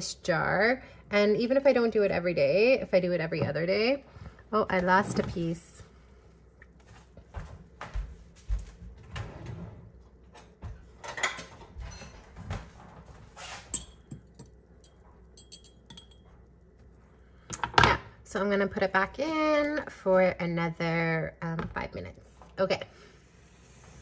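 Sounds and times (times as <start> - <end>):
fork clinking on glass jar: 13.7 - 16.2.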